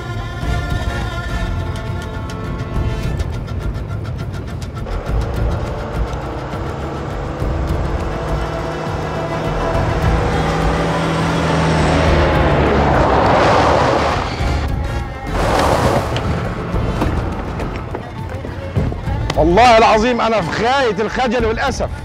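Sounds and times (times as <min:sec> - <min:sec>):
dramatic film score: 0:00.0 - 0:22.0
truck engine running: 0:00.8 - 0:19.4
rush of noise: 0:03.8 - 0:18.0.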